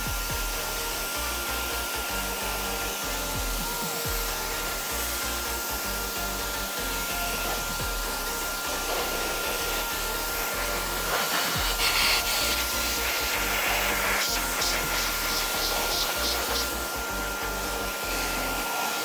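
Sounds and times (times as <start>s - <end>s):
pressure washer spraying water: 0.0s - 19.0s.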